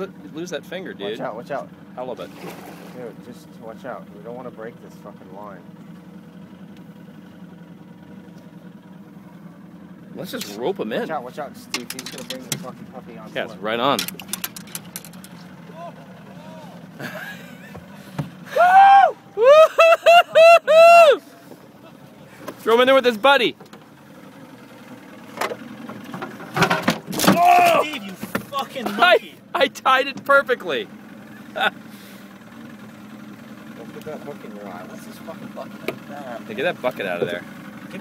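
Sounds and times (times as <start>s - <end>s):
boat engine idling: 0.0s - 38.0s
sharp clicks and knocks: 11.7s - 12.8s, 13.9s - 15.4s.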